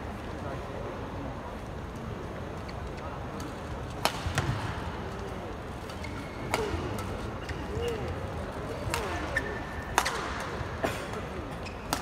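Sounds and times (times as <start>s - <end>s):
murmur of crowd: 0.0s - 12.0s
racket hitting shuttlecock: 4.0s - 4.6s, 8.9s - 9.2s, 9.9s - 10.6s.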